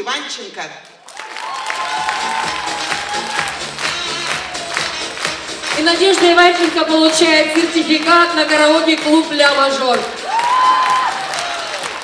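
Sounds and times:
hands clapping: 0:00.8 - 0:12.0.

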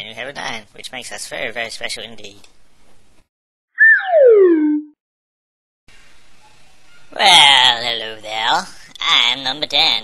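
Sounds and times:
cartoon chirp and falling glide: 0:03.8 - 0:04.9.

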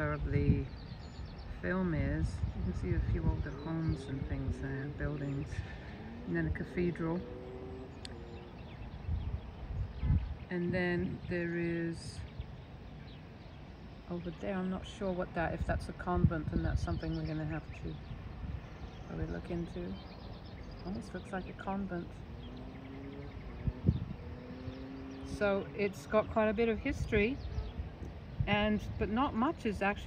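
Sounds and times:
distant bird chirps: 0:00.0 - 0:30.0
wind buffeting microphone: 0:00.0 - 0:30.0
dull low thumps: 0:20.7 - 0:29.1.

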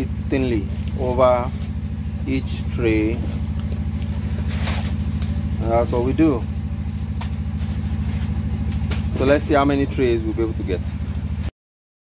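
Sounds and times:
engine running steadily: 0:00.0 - 0:11.5
hands working soil in trays: 0:00.3 - 0:06.4.

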